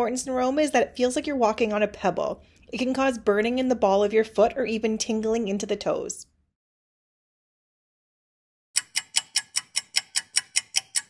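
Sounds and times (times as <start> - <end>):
rapid ticking clicks: 8.8 - 11.0.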